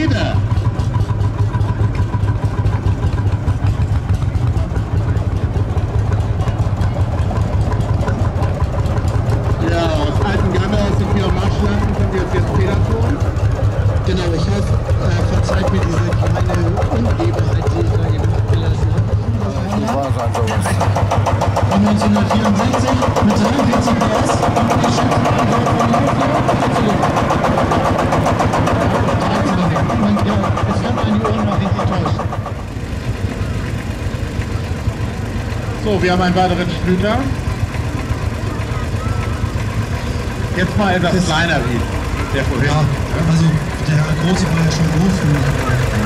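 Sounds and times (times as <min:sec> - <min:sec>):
tractor engine running: 0:00.0 - 0:46.0.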